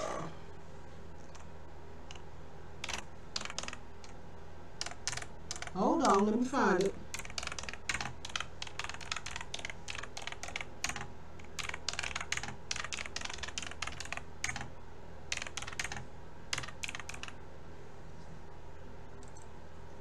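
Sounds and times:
typing on computer keyboard: 2.8 - 4.2, 4.8 - 14.7, 15.3 - 17.4.

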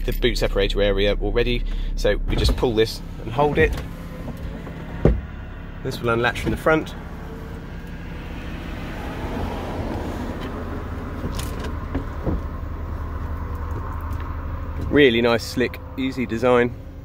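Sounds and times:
diesel engine idling: 0.0 - 17.0
folding car roof mechanism whirring: 2.2 - 15.9.

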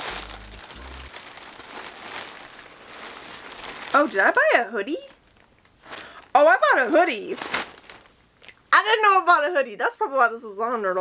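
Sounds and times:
plastic ripping: 0.0 - 4.4, 7.3 - 8.1
plastic bag crinkling: 0.0 - 8.2.

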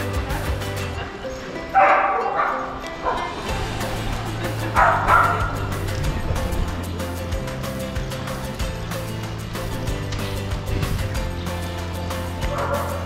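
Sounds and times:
background music: 0.0 - 13.0
dog barking: 1.8 - 3.3, 4.8 - 5.6, 12.5 - 13.0.

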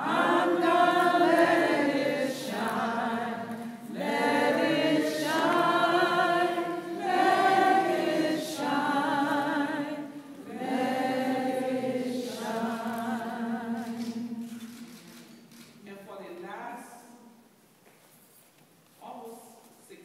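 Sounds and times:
unaccompanied singing: 0.0 - 14.8.

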